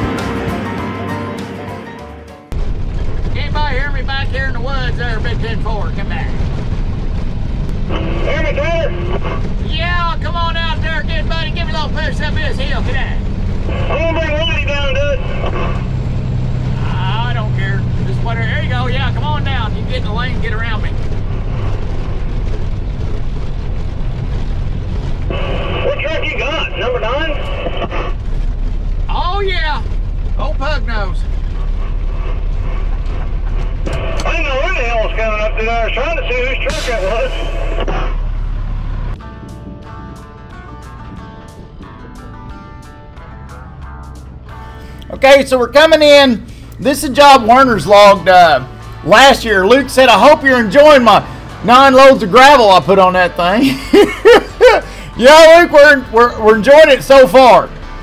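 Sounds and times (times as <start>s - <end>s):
truck engine rumbling: 0.0s - 58.0s
man talking into radio mic: 3.4s - 6.4s, 7.8s - 15.8s, 16.8s - 21.0s, 25.3s - 28.2s, 29.1s - 31.3s, 33.9s - 38.2s, 45.1s - 53.8s, 55.2s - 57.7s
voices over radio speaker: 7.8s - 15.9s, 25.3s - 28.2s, 30.4s - 38.2s.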